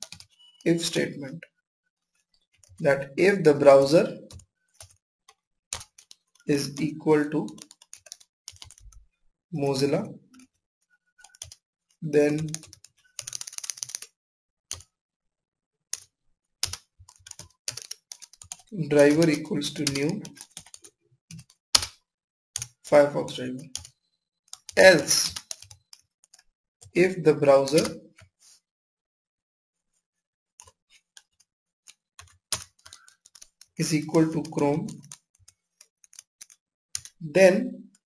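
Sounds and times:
typing on computer keyboard: 0.0 - 0.6, 4.3 - 6.4, 7.5 - 9.0, 11.2 - 11.6, 12.3 - 14.9, 15.9 - 22.0, 22.6 - 22.9, 23.7 - 26.5, 30.6 - 33.8, 34.9 - 37.2.

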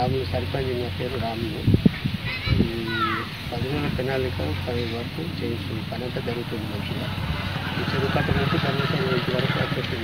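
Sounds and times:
man speaking: 0.0 - 1.7, 2.6 - 10.0
low engine rumble: 2.9 - 10.0.

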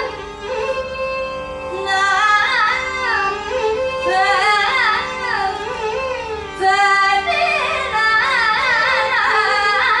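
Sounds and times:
woman singing ornamented melody: 6.5 - 10.0.

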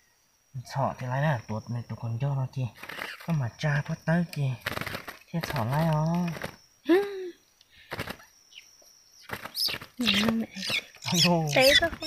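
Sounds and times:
people talking: 0.6 - 4.6, 5.4 - 7.3, 10.0 - 12.0
bird squeaky calls: 2.8 - 3.3, 7.9 - 12.0.

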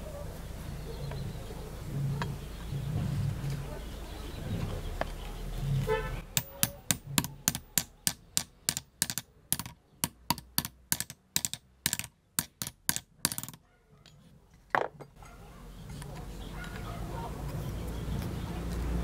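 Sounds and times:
metal being tapped: 6.3 - 13.6.

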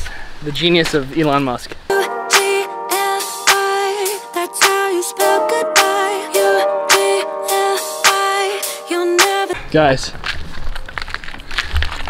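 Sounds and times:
concrete rubble clicking and scraping: 10.1 - 12.0.

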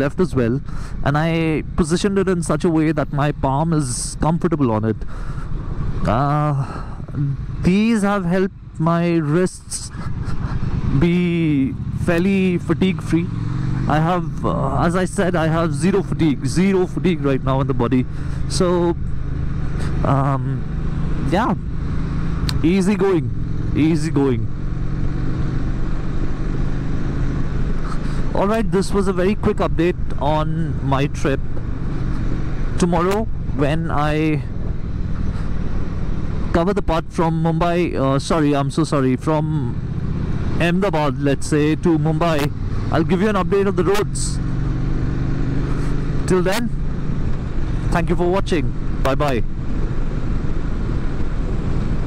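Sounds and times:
motorcycle engine cruising: 0.0 - 52.0
road noise: 0.0 - 52.0.

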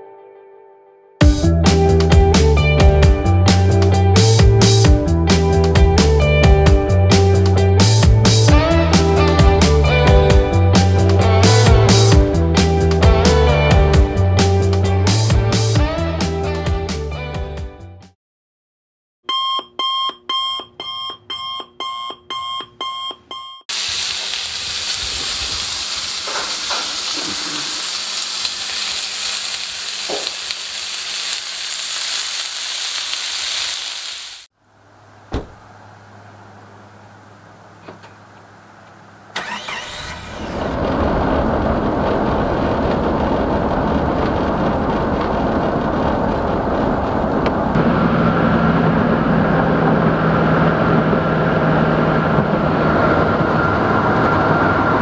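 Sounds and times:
loud steady hiss: 23.7 - 34.5
car engine and road noise: 34.6 - 55.0.

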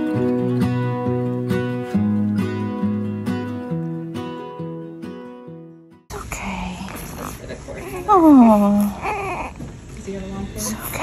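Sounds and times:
newborn whimpering and grunting: 7.0 - 9.7
woman cooing: 7.9 - 9.5.

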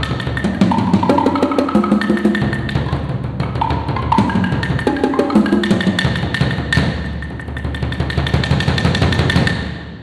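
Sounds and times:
fast drumming on woodblocks and drums: 0.0 - 9.8.

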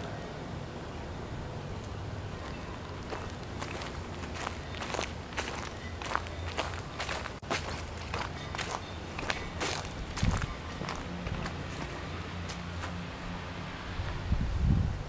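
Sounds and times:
footsteps crunching through dry leaves: 2.3 - 13.0.

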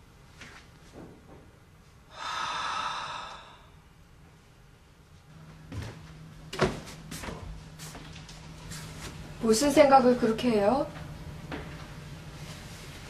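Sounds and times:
breathy exhale: 2.1 - 3.8.

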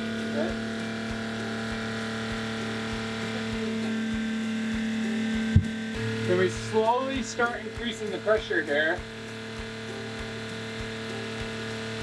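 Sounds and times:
electric pumps humming: 0.0 - 12.0.

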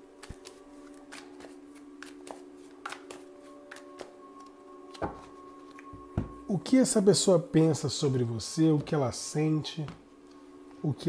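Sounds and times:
cards being shuffled: 0.0 - 5.9
faint steady hum: 0.0 - 11.0.

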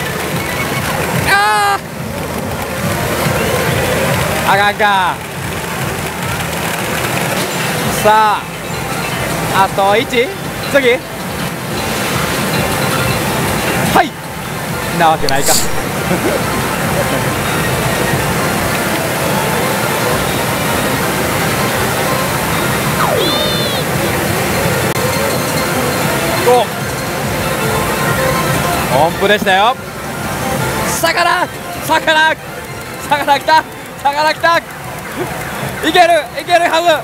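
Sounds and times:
pachinko machines and steel balls: 0.0 - 37.0
man's voice: 15.0 - 15.9
machine electronic sound effects: 15.2 - 15.9, 22.1 - 26.3
falling electronic tone: 22.2 - 25.4
high electronic chirp: 23.0 - 24.1.

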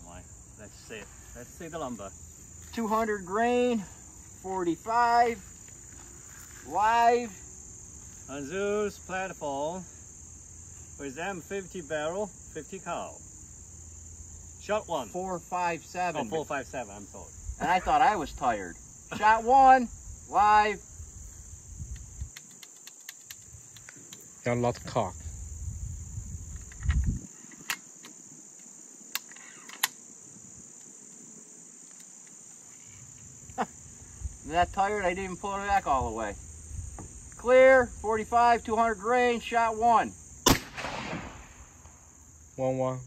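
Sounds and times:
crickets chirping: 0.0 - 43.0
insects trilling: 0.0 - 43.0
faint ticks: 21.8 - 24.3
air rifle shot: 40.4 - 42.0.

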